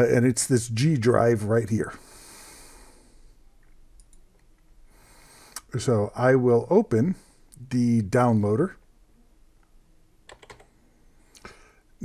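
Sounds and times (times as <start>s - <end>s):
computer keyboard clicks: 10.3s - 10.7s.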